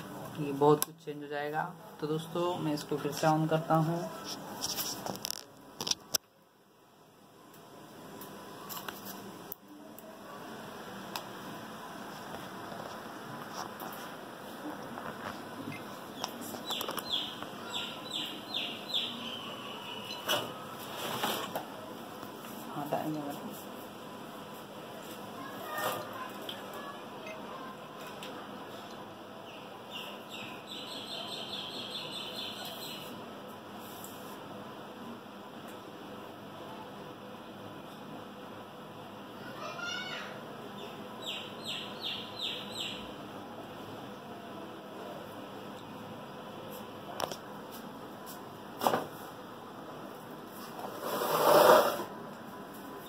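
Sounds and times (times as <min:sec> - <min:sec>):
small bird chirping: 0:16.1 - 0:20.3, 0:29.4 - 0:33.2, 0:40.8 - 0:43.1.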